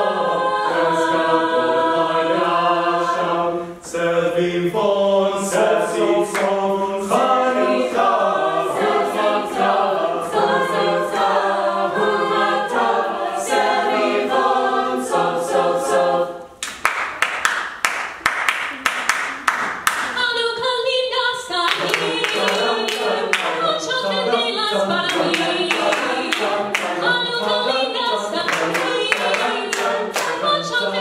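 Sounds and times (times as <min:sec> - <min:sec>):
a cappella group singing: 0:00.0 - 0:16.6, 0:20.1 - 0:31.0.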